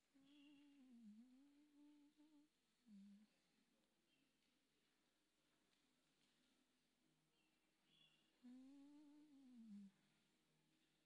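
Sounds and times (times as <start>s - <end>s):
person humming faintly: 0.0s - 3.5s, 8.4s - 10.1s.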